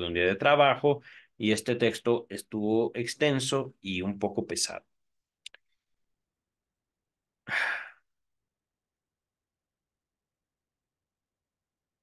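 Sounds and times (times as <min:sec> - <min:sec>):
man sighing: 0:07.4 - 0:08.1.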